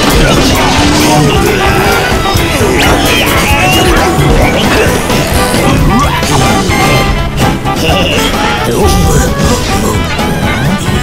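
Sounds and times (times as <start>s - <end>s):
cartoon background music: 0.0s - 11.0s
cartoon sound effects: 0.0s - 11.0s.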